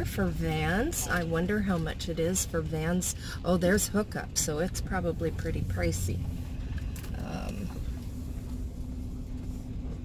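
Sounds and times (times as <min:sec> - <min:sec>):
faint steady hum: 0:00.0 - 0:10.0
van engine low rumble: 0:00.0 - 0:10.0.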